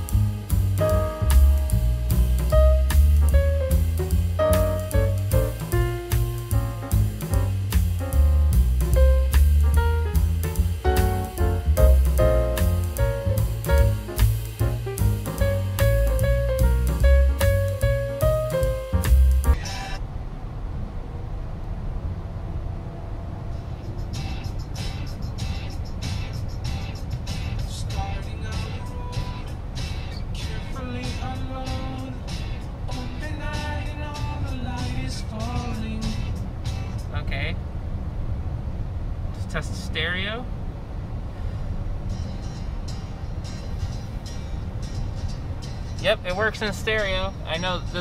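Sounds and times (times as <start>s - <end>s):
song through car speakers: 0.0s - 20.0s, 24.1s - 37.1s
road and tyre noise: 0.0s - 48.0s.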